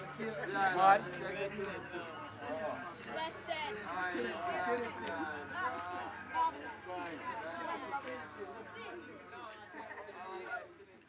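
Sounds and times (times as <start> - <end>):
children chattering and calling out: 0.0 - 10.8.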